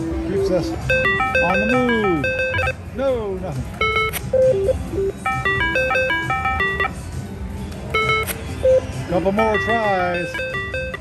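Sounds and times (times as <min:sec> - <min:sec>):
slot machine beeping tune: 0:00.0 - 0:02.9, 0:03.8 - 0:07.1, 0:07.9 - 0:11.0.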